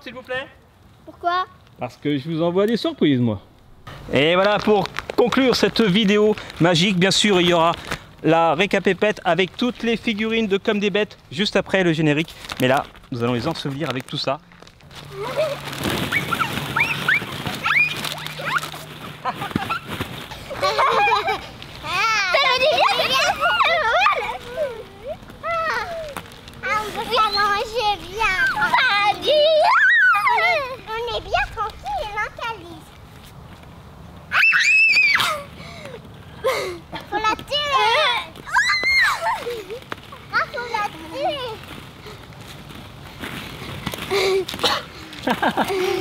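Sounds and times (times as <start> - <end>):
plastic balls tumbling: 12.2 - 21.9
girls squealing and giggling: 15.1 - 26.2, 28.2 - 30.8, 34.3 - 40.9
children shrieking: 15.2 - 18.9, 20.6 - 24.8, 28.2 - 30.8, 34.3 - 36.8, 38.4 - 39.8
girls screaming: 16.0 - 18.9, 28.4 - 30.8, 34.3 - 35.5, 38.4 - 39.6.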